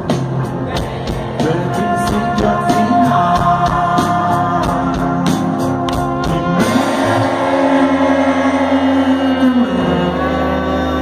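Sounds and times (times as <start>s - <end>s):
live rock band playing: 0.0s - 11.0s
sustained guitar and keyboard chord: 0.0s - 11.0s.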